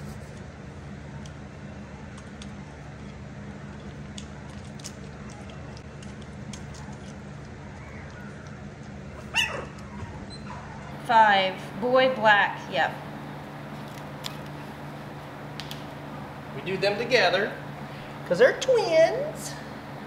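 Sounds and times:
steady low hum: 0.0 - 20.0
puppy whining: 6.7 - 11.0.

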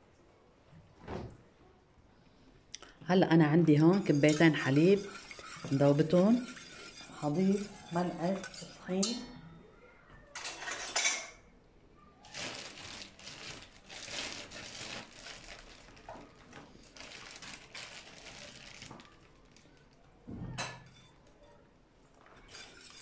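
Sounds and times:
whisk scraping metal pot: 3.9 - 9.2.

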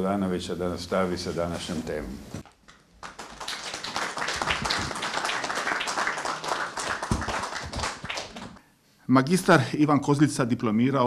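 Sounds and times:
small audience clapping: 2.4 - 8.6.

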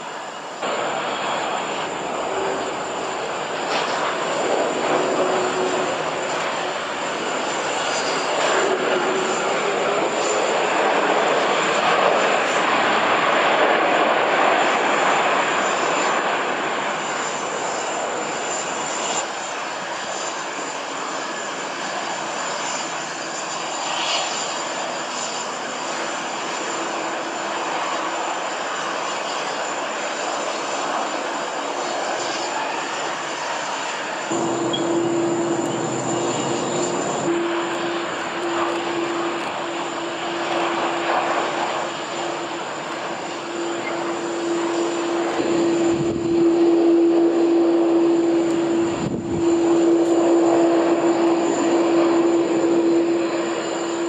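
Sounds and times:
jet engine roar: 0.0 - 54.0.

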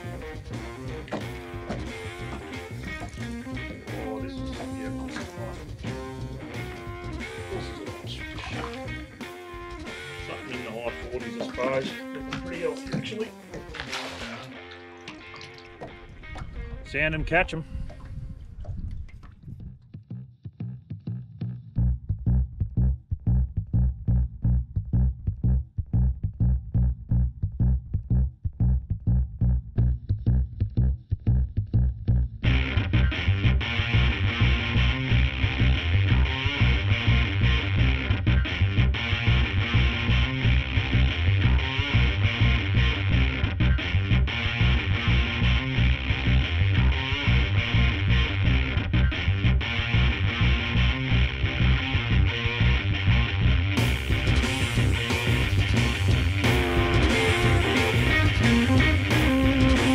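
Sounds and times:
background music with pulsing beat: 0.0 - 14.0, 53.8 - 59.9
guitar: 0.0 - 18.5, 32.4 - 59.9.

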